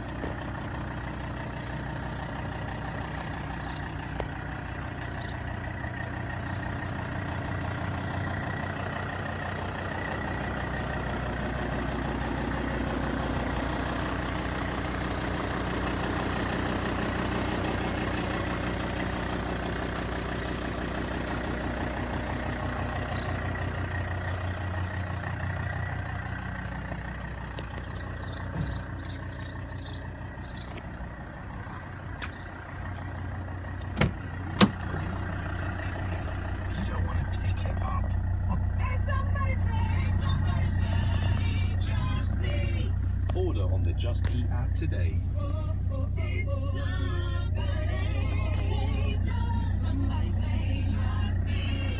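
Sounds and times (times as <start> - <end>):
vehicle engine idling: 0.0 - 51.9.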